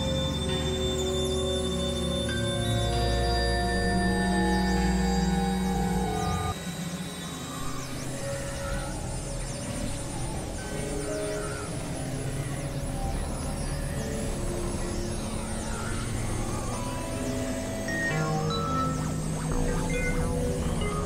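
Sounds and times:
experimental synthesizer music: 0:13.4 - 0:21.0.

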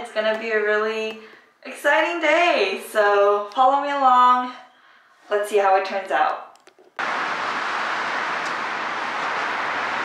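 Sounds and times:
traffic hiss: 0:07.0 - 0:10.0.

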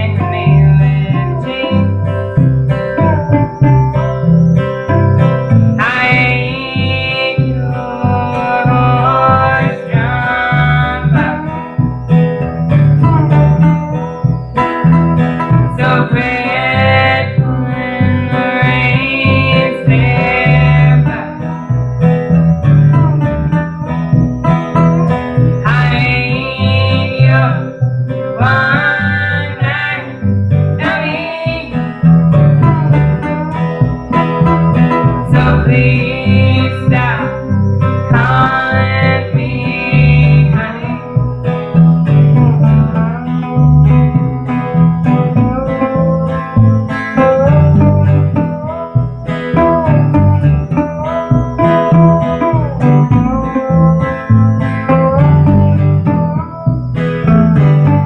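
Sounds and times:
women singing: 0:00.0 - 0:01.9, 0:05.8 - 0:11.6, 0:15.7 - 0:21.4, 0:25.6 - 0:27.7, 0:28.4 - 0:30.2, 0:30.8 - 0:31.8, 0:35.2 - 0:37.5, 0:38.1 - 0:41.1
strummed acoustic guitars: 0:00.0 - 0:58.0
upright bass: 0:00.0 - 0:58.0.

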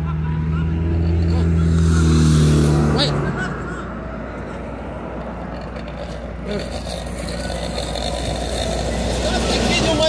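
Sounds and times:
street noise: 0:00.0 - 0:10.0
truck engine running: 0:00.0 - 0:10.0.

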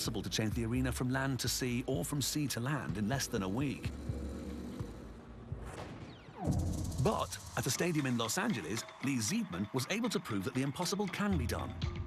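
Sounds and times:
low droning soundtrack music: 0:00.0 - 0:12.0.

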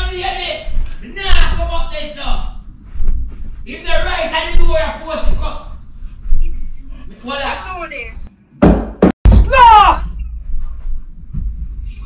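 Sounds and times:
loud thumps on floor: 0:08.6 - 0:09.6.

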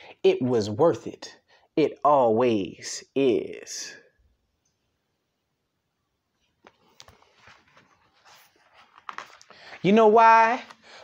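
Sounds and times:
book rustling: 0:06.4 - 0:11.0.

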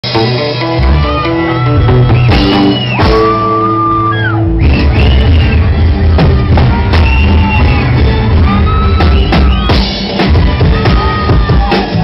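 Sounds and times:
live band through pa: 0:00.0 - 0:12.0.

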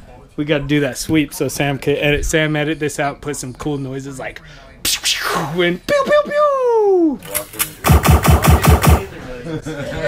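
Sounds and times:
machine-gun burst: 0:07.8 - 0:09.1.

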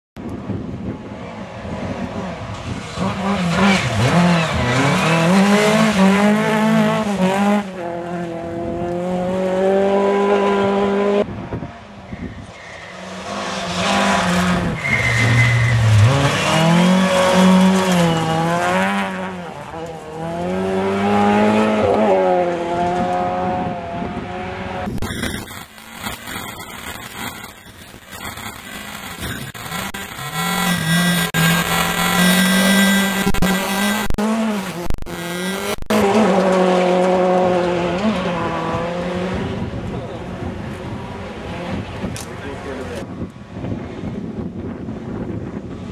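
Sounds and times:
rally car engines revving past: 0:01.0 - 0:25.0, 0:28.4 - 0:44.2
digital noise: 0:24.9 - 0:36.1.

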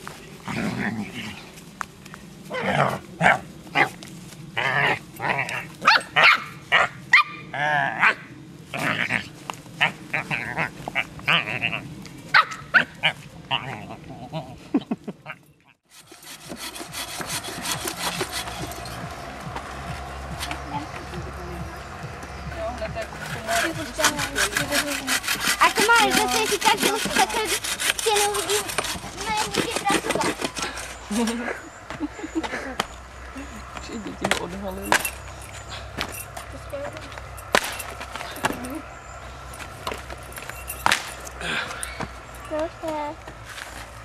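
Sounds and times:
bow saw rasping through log: 0:15.9 - 0:19.2, 0:23.2 - 0:31.4
voices talking: 0:17.5 - 0:40.5, 0:41.2 - 0:43.4.

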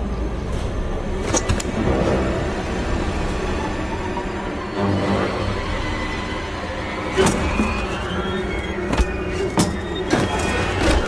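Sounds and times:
low tense underscore rumble: 0:00.0 - 0:11.0.

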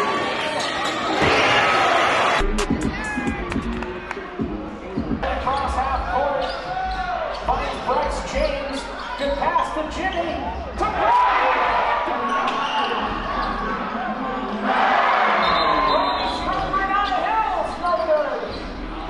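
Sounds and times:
voices of players and spectators: 0:00.0 - 0:19.0.

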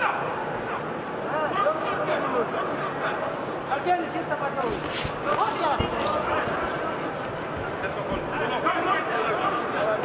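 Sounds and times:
punches thudding: 0:04.7 - 0:06.5.

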